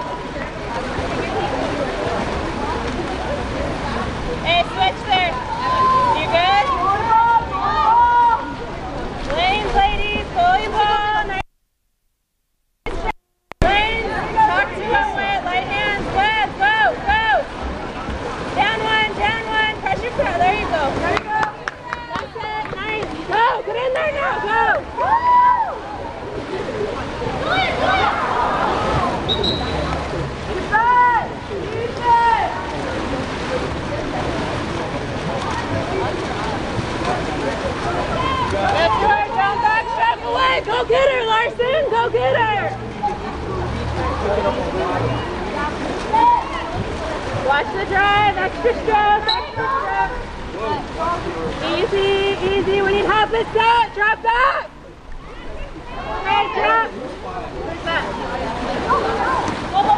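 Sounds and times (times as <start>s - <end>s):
water splashing from swimmers: 0.0s - 11.4s, 12.9s - 59.9s
voices shouting and calling out: 0.0s - 11.5s, 13.6s - 59.9s.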